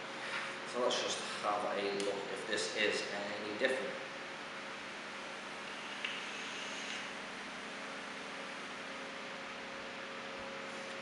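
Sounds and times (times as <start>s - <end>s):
faint mains hum: 0.0s - 11.0s
steady hiss: 5.6s - 7.3s
airy vape draw: 5.7s - 7.1s.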